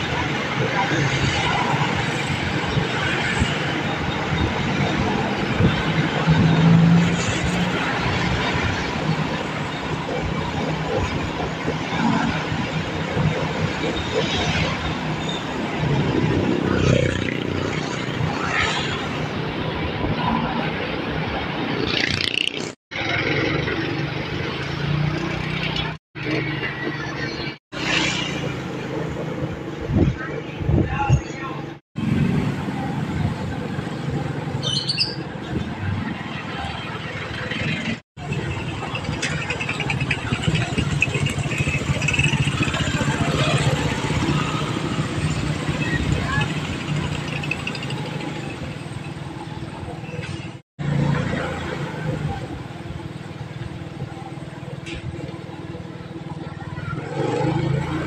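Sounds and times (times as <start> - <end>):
road noise: 0.0 - 58.0
street noise: 0.0 - 58.0
wind on microphone: 28.4 - 34.6
motorcycle engine running: 38.2 - 48.9.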